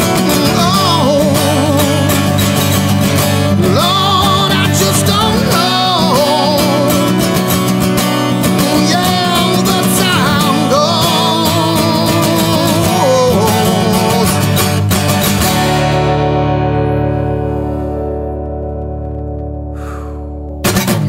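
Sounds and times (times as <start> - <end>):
man singing: 0.0 - 2.8, 3.5 - 14.8
strummed acoustic guitar: 0.0 - 21.0.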